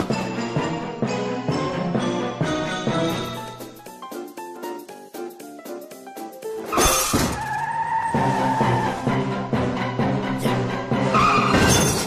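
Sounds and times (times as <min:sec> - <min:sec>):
music with a beat: 0:02.9 - 0:06.6
tyre squeal: 0:06.7 - 0:09.1, 0:11.1 - 0:12.0
crash: 0:11.2 - 0:12.0.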